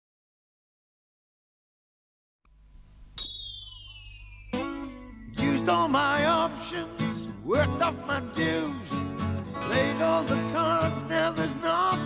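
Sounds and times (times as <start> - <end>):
low steady hum: 2.5 - 3.2
high whistle-like gliding tone: 3.2 - 7.4.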